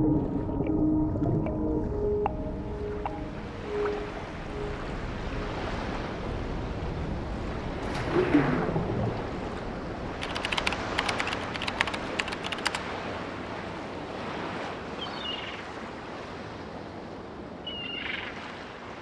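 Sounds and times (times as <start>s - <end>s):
sea waves and surf: 0.0s - 19.0s
wind: 0.0s - 19.0s.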